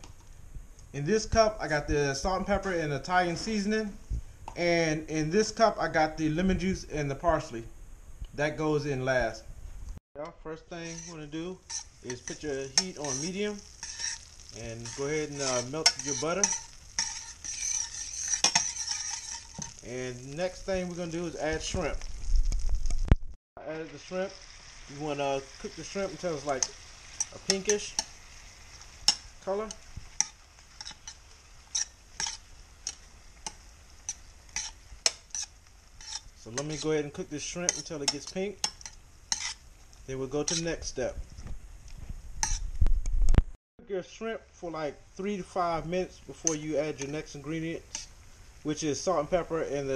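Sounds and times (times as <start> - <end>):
butter sizzling in a pan: 10.6 - 42.8, 44.9 - 49.9
spatula stirring in a pan: 10.7 - 22.2, 24.2 - 40.9, 42.4 - 42.7, 46.4 - 48.6.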